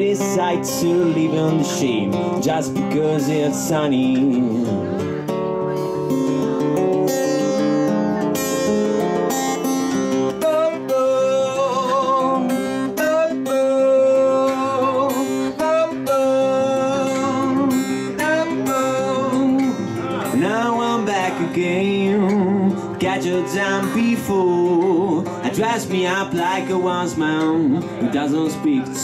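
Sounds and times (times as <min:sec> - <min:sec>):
man singing: 0:00.0 - 0:06.1, 0:09.1 - 0:29.0
acoustic guitar strumming: 0:00.0 - 0:29.0.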